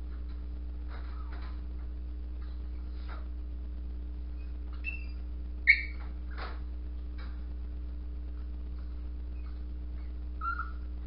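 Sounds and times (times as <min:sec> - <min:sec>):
low electrical hum: 0:00.0 - 0:11.0
dog whimpering: 0:04.4 - 0:06.0, 0:09.4 - 0:10.9.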